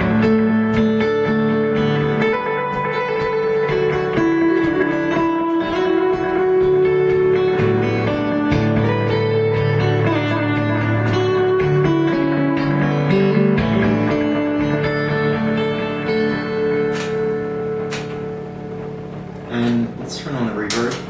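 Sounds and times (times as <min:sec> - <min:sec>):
fingerpicked electric guitar with echoes: 0:00.0 - 0:21.0.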